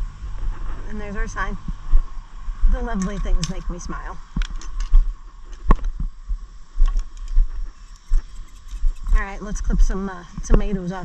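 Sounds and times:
sharp clicks: 6.8 - 9.2
camera handling thumps and rubbing: 6.9 - 9.2.

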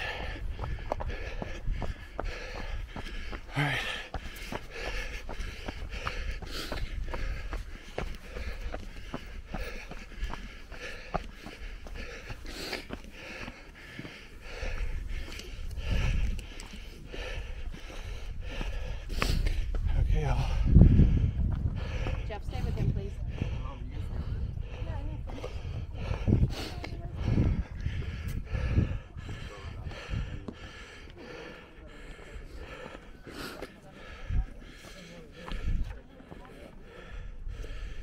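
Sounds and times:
runner breathing: 0.0 - 38.0
running footsteps on dirt trail: 0.0 - 38.0.

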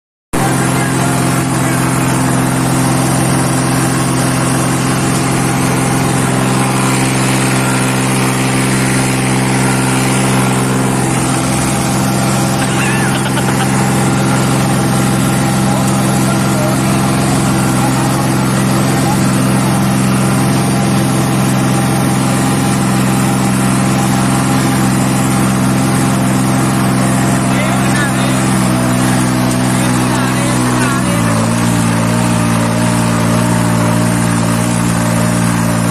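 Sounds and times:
tractor diesel engine under load: 0.3 - 35.9.

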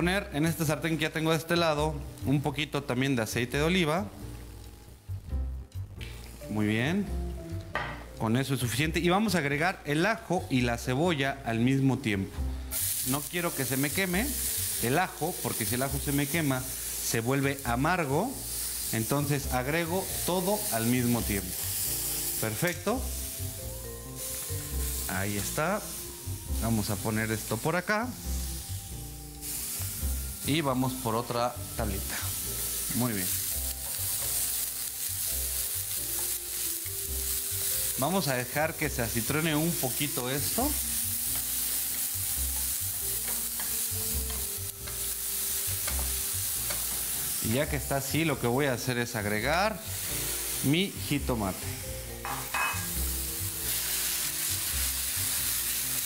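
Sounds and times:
onion sizzling in a frying pan: 0.0 - 11.0, 12.4 - 56.0
background music with held tones: 0.0 - 56.0.

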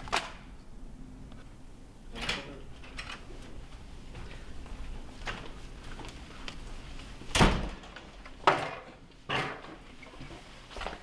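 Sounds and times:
door shutting with loud knock: 7.3 - 9.6.

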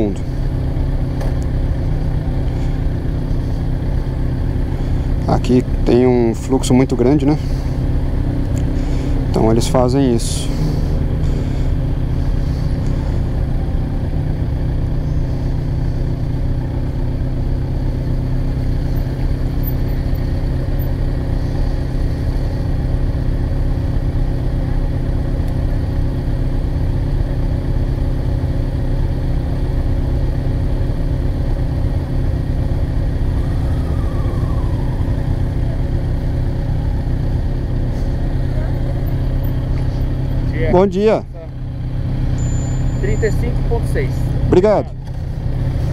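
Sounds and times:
motorcycle engine idling: 0.0 - 45.9.

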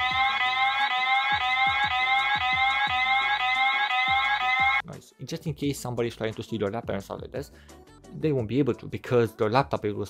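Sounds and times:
electronic alarm rising tones: 0.0 - 4.8.

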